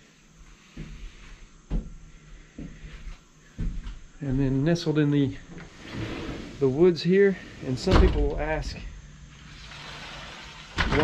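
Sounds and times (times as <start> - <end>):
insects hissing: 0.0 - 10.9.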